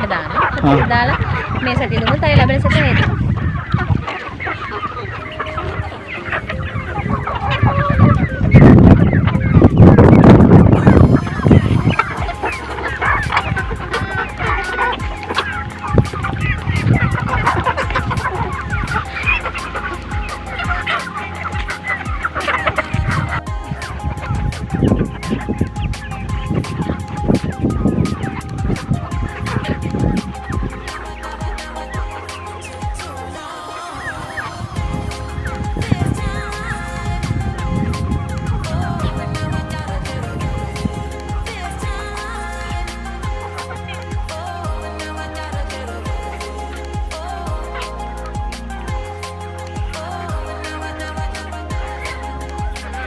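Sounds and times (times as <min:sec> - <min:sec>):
background music with steady beat: 0:00.0 - 0:53.0
chickens clucking: 0:00.0 - 0:53.0
loud low rumble: 0:34.6 - 0:43.5.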